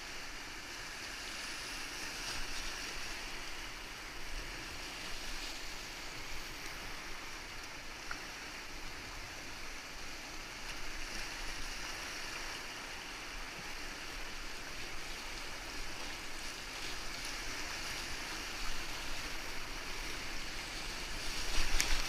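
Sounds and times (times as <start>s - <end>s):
whitewater rapids rushing: 0.1s - 22.0s.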